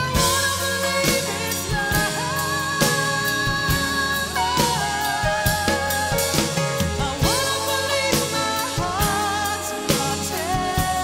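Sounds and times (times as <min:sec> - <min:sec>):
sung vocal melody: 0:00.0 - 0:11.0
sustained musical backing: 0:00.0 - 0:11.0.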